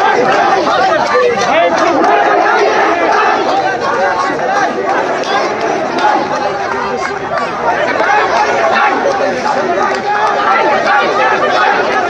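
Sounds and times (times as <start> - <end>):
crowd of protesters calling out: 0.0 - 12.0.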